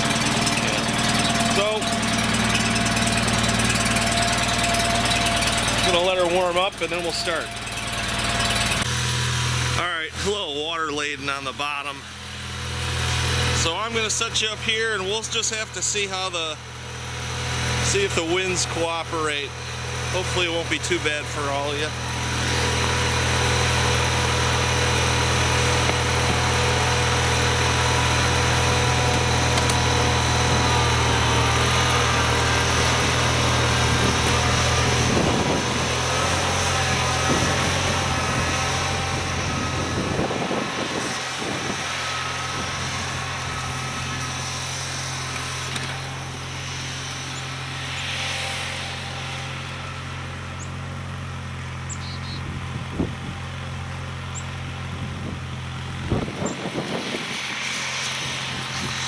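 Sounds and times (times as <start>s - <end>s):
garden tractor engine running: 0.0s - 59.0s.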